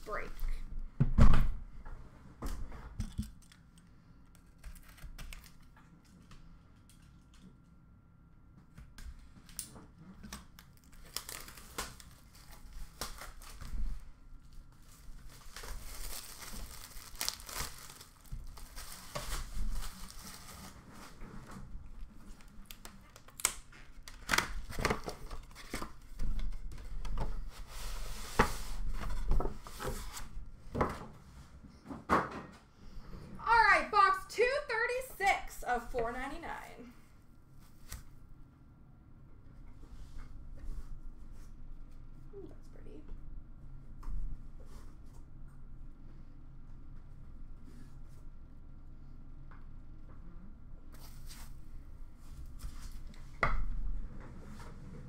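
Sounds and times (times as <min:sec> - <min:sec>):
plastic shrink-wrap crinkling: 0:10.6 - 0:21.2
person speaking: 0:33.4 - 0:37.0.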